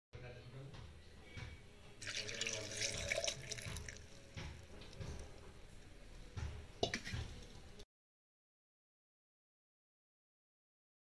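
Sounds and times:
milk pouring into metal jar: 2.0s - 6.1s.

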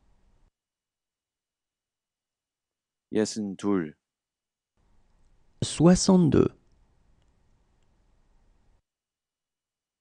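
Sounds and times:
person reading a number: 5.6s - 6.6s.

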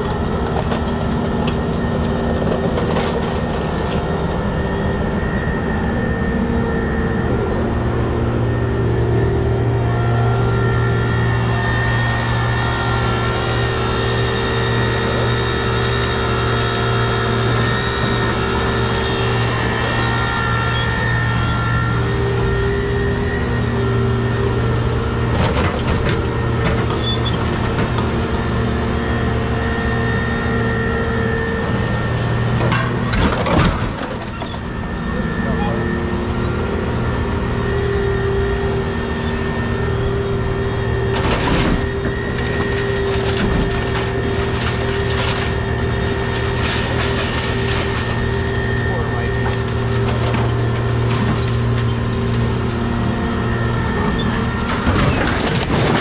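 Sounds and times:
diesel engine drone: 0.0s - 56.0s
hydraulic pump whine: 0.0s - 56.0s.

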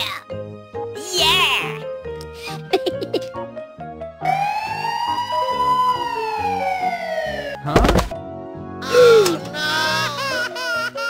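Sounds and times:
background music: 0.0s - 11.0s
cartoon police siren wail: 4.2s - 7.6s.

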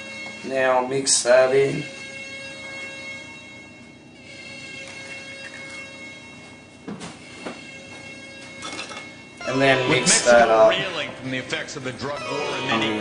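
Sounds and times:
faint drone of held tones: 0.0s - 13.0s.

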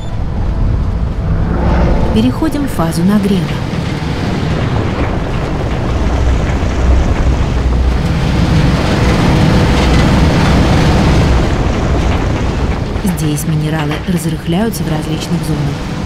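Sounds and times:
stone tumbling in rotating drum: 3.2s - 16.0s.

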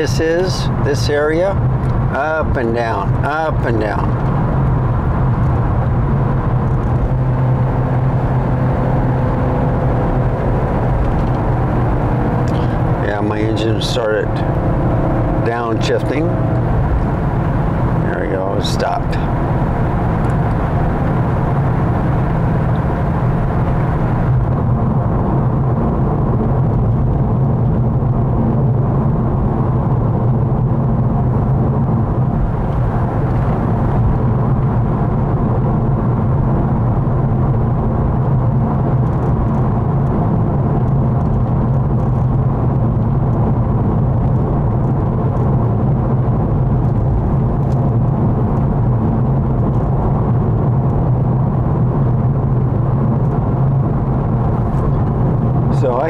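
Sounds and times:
car engine hum: 0.0s - 56.0s.

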